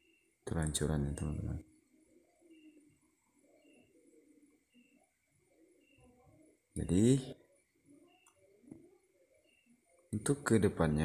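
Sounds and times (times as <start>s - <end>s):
bird cooing: 1.9s - 6.6s.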